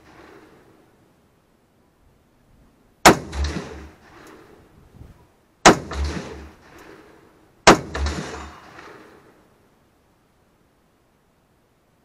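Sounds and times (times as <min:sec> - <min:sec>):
rifle shots with echo: 0:00.0 - 0:00.7, 0:03.0 - 0:04.6, 0:05.6 - 0:09.5.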